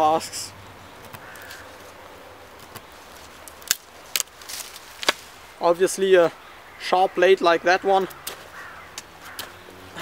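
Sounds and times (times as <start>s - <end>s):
knife cracking into wood: 3.5s - 5.3s.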